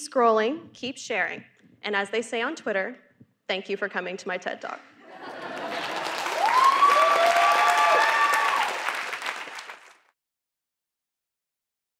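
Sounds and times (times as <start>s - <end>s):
crowd whooping: 5.2s - 9.7s
audience applauding: 5.2s - 10.1s.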